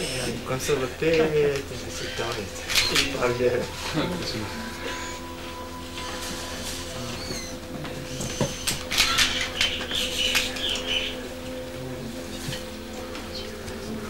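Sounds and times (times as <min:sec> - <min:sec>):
steady low hum: 0:00.0 - 0:14.0
small birds chirping: 0:07.2 - 0:11.6.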